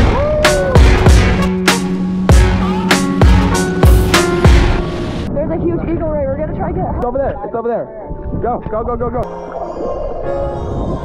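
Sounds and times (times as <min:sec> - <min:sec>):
music with heavy beat: 0:00.0 - 0:04.8.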